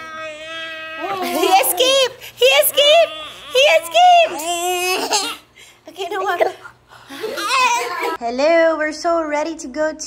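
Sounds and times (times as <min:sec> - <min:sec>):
woman laughing: 0:01.0 - 0:02.2
toddler laughing: 0:03.6 - 0:05.5, 0:06.2 - 0:08.2.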